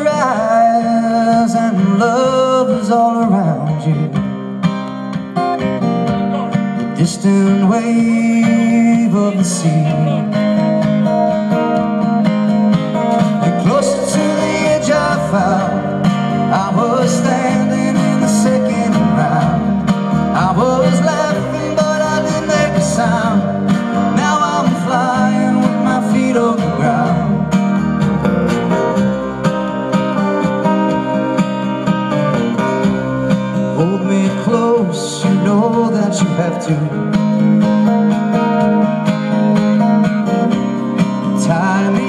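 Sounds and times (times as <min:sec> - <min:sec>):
drums: 0:00.0 - 0:42.0
strummed acoustic guitars: 0:00.0 - 0:42.0
upright double bass: 0:04.9 - 0:42.0
sliding melody line: 0:09.9 - 0:34.7.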